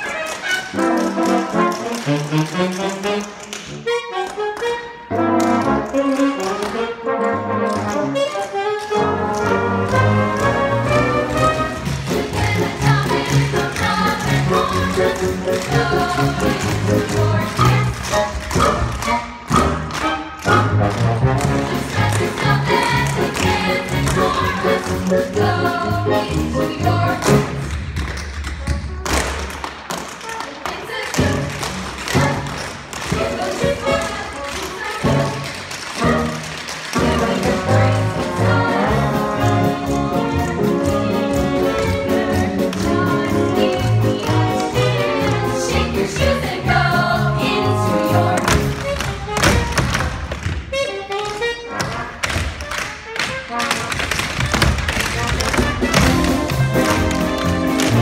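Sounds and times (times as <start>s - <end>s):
show tune music: 0.0s - 27.9s, 28.6s - 58.0s
tap shoes on stage floor: 0.0s - 58.0s.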